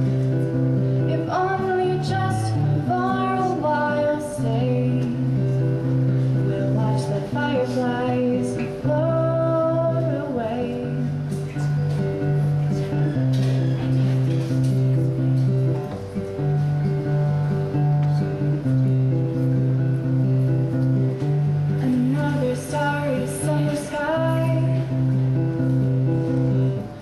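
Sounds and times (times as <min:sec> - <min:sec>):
acoustic guitar chords: 0:00.0 - 0:27.0.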